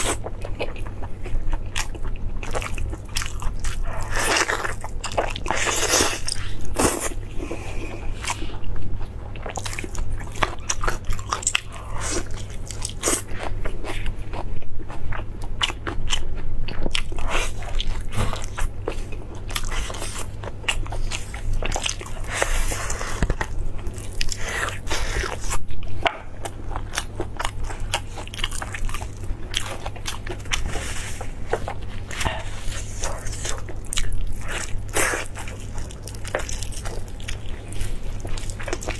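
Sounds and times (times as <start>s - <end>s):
steady low hum: 0.0s - 38.9s
wet chewing and bites: 31.5s - 38.9s.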